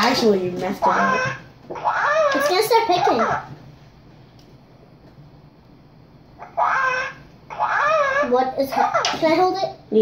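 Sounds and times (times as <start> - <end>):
electronic toy warbling call: 6.5 - 8.3.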